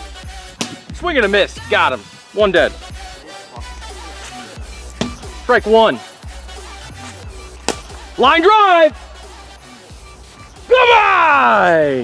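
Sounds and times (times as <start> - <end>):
background music: 0.0 - 12.0
plastic bat hitting ball: 0.6 - 1.0, 5.0 - 5.3, 7.7 - 8.0.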